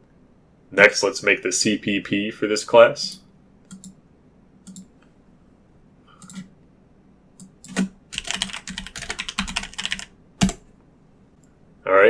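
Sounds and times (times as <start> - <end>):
typing on a computer keyboard: 3.7 - 4.0, 4.7 - 4.9, 6.2 - 6.5, 7.4 - 10.7.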